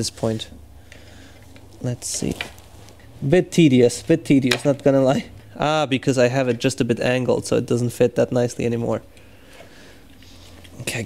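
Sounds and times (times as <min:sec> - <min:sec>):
man talking: 0:00.0 - 0:00.6, 0:01.8 - 0:02.5, 0:03.2 - 0:09.1, 0:10.8 - 0:11.0.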